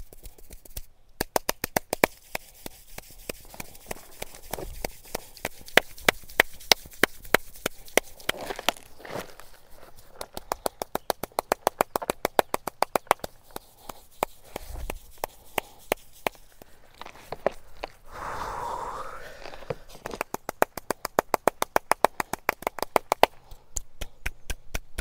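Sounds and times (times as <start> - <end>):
soft rubbing of hair: 2.1 - 10.3, 13.2 - 18.0.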